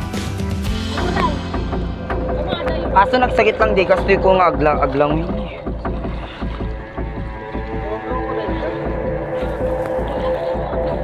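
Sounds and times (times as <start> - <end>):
boat engine putter: 0.9 - 11.0.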